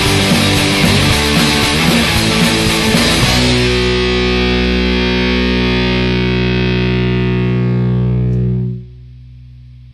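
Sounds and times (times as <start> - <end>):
distorted electric guitar chord: 0.0 - 9.9.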